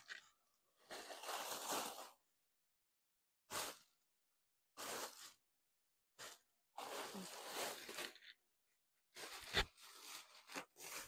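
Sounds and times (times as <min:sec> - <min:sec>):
plastic bag rustling: 0:00.8 - 0:02.3, 0:04.8 - 0:05.4, 0:06.2 - 0:08.4, 0:09.1 - 0:11.0.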